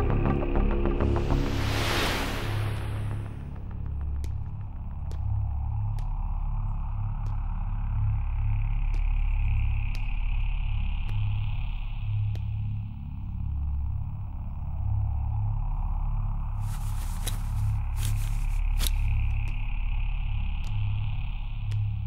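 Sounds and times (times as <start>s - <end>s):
deep pulsing low drone: 0.0s - 22.0s
tense film score: 0.0s - 22.0s.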